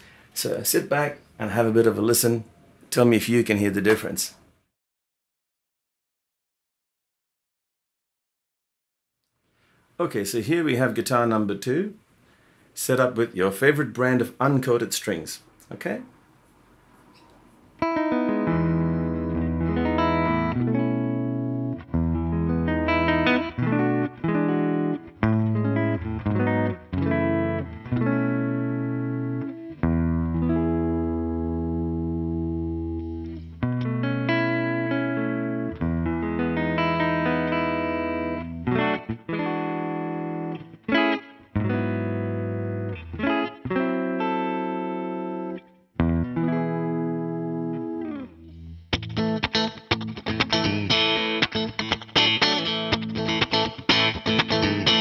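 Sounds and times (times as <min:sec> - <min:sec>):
electric guitar through an amp: 0:17.8 - 0:55.0.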